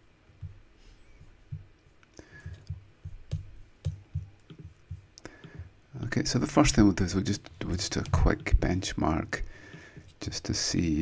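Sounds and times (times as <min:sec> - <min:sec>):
computer keyboard and mouse clicking: 0:02.1 - 0:05.6.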